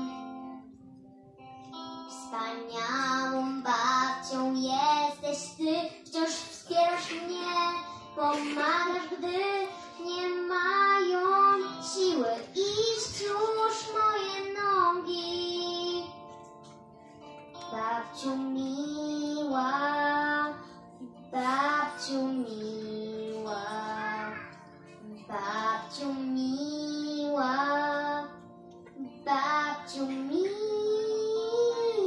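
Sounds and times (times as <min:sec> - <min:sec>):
instrumental accompaniment: 0:00.0 - 0:32.0
children singing: 0:21.4 - 0:26.3.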